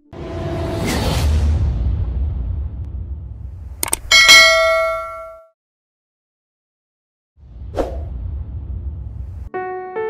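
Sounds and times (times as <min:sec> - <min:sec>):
low rumble: 0:00.2 - 0:04.2, 0:07.4 - 0:09.6.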